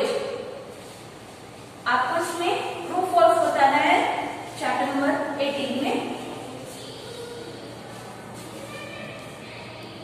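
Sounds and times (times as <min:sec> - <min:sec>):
woman speaking: 0:01.8 - 0:06.3.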